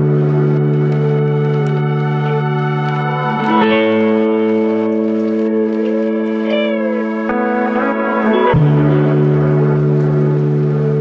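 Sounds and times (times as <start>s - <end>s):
music of held chords: 0.0s - 11.0s
note gliding up and down: 0.0s - 11.0s.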